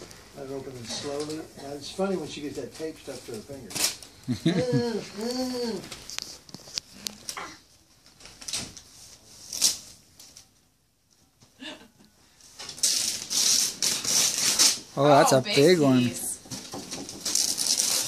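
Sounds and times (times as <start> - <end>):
wrapping paper tearing and crinkling: 0.6 - 4.4, 5.0 - 10.5, 12.6 - 18.0.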